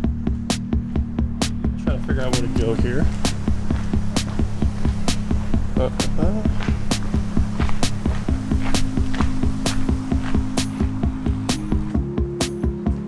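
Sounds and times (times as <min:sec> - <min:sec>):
background music with drum beat: 0:00.0 - 0:13.0.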